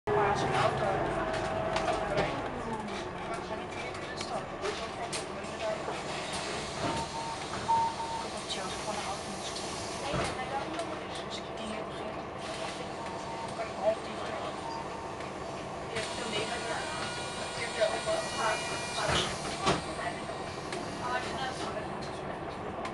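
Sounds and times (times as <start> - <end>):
bus interior hum: 0.1 - 22.9
passengers' voices: 0.1 - 22.9
bus door warning beeps: 6.3 - 8.4, 12.6 - 13.6, 14.6 - 15.2.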